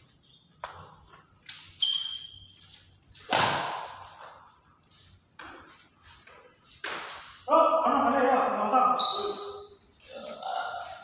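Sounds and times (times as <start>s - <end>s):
short high squeak: 1.8s - 2.6s
rackets smacking shuttlecock: 3.2s - 4.4s.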